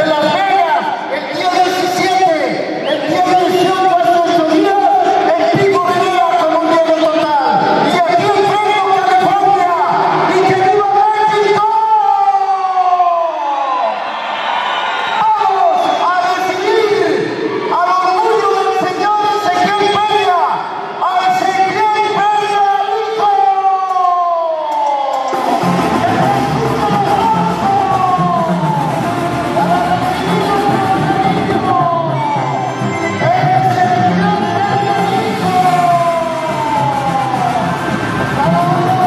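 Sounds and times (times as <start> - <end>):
live band music: 25.3 - 39.0.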